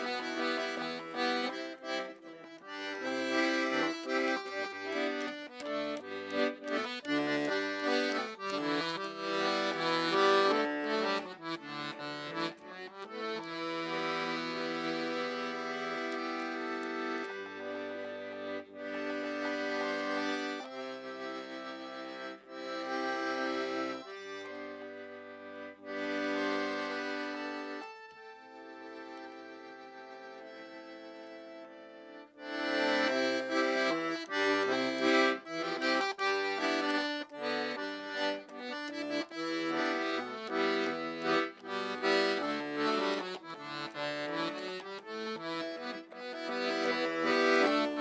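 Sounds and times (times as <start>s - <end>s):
piano accordion playing: 0.0s - 48.0s.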